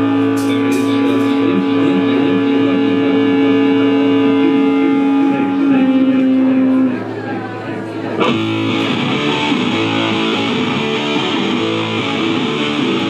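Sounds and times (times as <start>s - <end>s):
drums: 0.0s - 2.8s, 8.2s - 13.0s
electric guitar: 0.0s - 13.0s
rock band droning chord: 0.0s - 13.0s.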